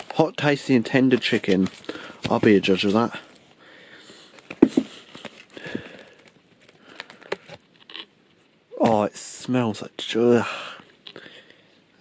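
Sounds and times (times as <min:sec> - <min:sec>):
cardboard and bag rustling: 0:00.0 - 0:03.4, 0:04.3 - 0:07.6.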